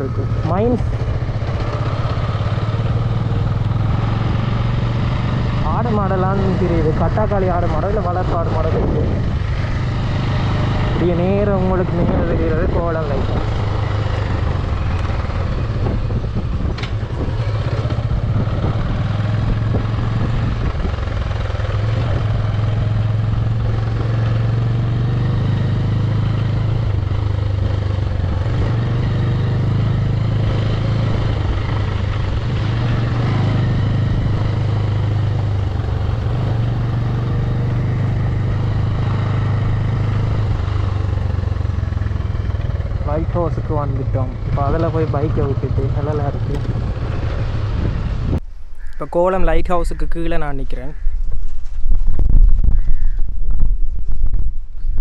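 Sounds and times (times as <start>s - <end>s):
motorcycle engine running: 0.0s - 49.0s, 50.9s - 55.0s
wind and road noise: 0.0s - 55.0s.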